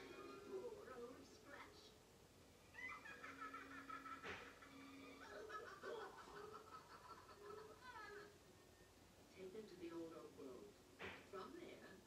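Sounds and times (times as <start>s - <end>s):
cartoon voices from television: 0.0s - 8.4s.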